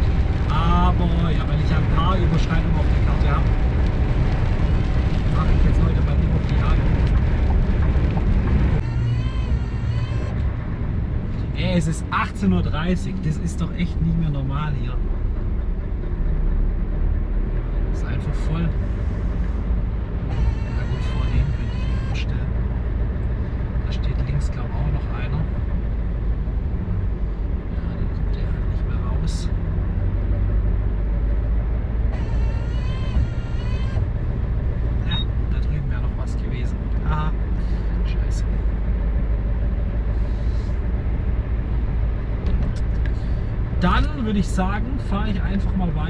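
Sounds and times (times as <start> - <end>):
diesel truck engine rumbling: 0.0 - 46.0.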